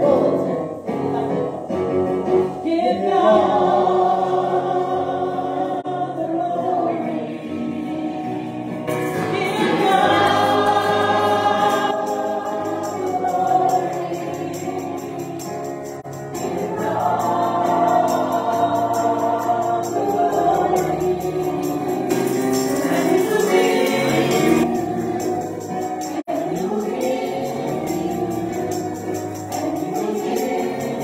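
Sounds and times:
musical accompaniment: 0.0 - 31.0
group singing gospel in harmony: 2.5 - 31.0.

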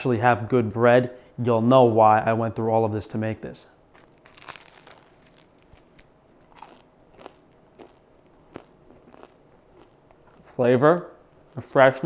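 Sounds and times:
chewing crusty bread: 3.9 - 12.0.

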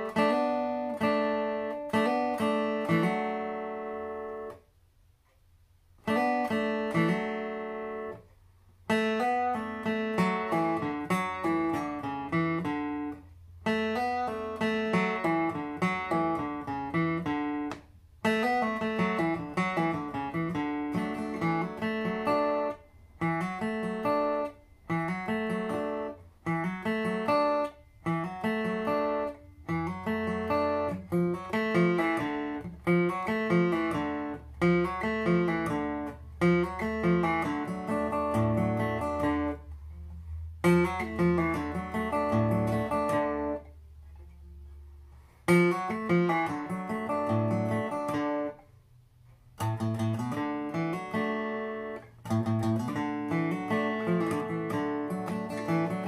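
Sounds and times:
acoustic guitar solo: 0.0 - 4.8, 5.9 - 56.0.

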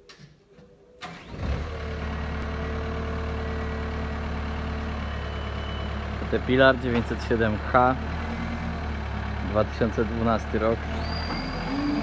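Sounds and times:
diesel engine starting and idling: 1.0 - 12.0.

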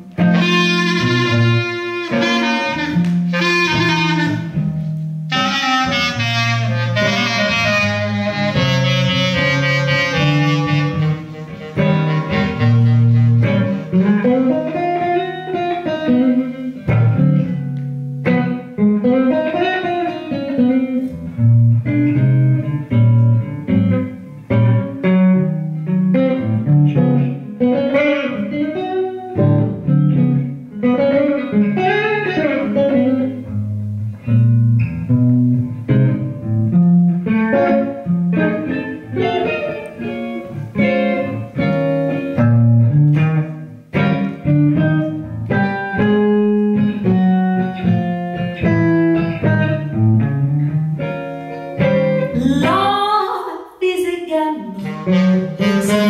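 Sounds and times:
bass notes: 0.0 - 15.5, 16.1 - 19.3, 32.4 - 52.9
blues electric guitar solo: 0.0 - 56.0.

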